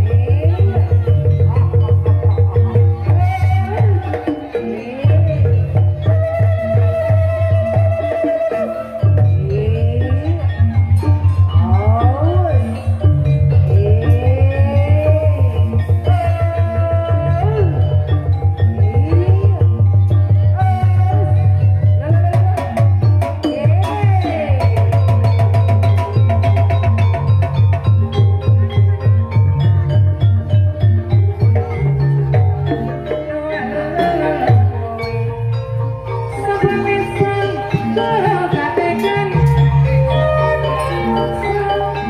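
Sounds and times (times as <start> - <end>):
wavering melody with sliding notes: 0.0 - 42.0.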